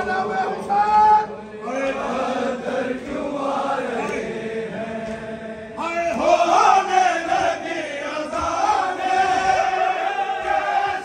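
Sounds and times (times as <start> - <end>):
louder voice chanting: 0.0 - 11.0
men chanting a lament: 0.0 - 11.0.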